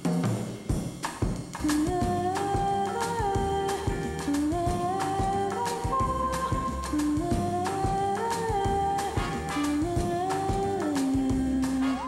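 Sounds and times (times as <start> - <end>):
steady drum beat: 0.0 - 12.0
held melody line: 2.0 - 12.0.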